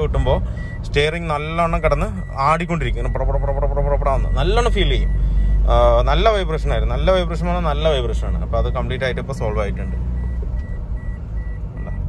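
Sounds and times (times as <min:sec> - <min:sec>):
man talking: 0:00.0 - 0:10.0
road and engine rumble in car: 0:00.0 - 0:12.0.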